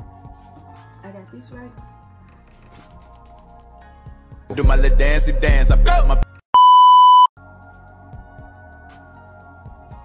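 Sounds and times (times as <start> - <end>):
soft background music: 0.0 - 6.2, 7.4 - 10.0
electronic censor bleep: 6.6 - 7.3.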